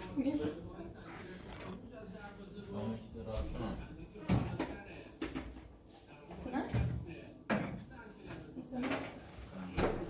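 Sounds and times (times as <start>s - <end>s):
quiet talk: 0.0s - 10.0s.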